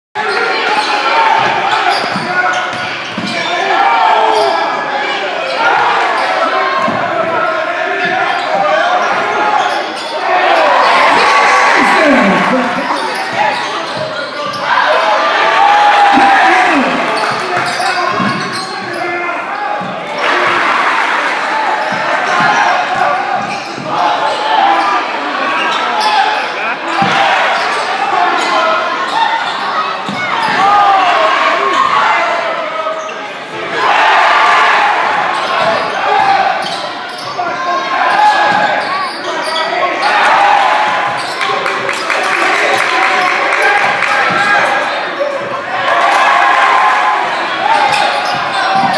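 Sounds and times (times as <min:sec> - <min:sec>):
voices echoing in a hall: 0:00.2 - 0:48.9.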